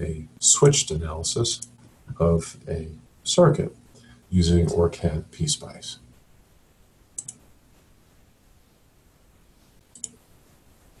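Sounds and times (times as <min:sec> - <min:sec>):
faint room noise: 0:00.0 - 0:11.0
computer mouse clicks: 0:07.2 - 0:07.5, 0:09.9 - 0:10.2.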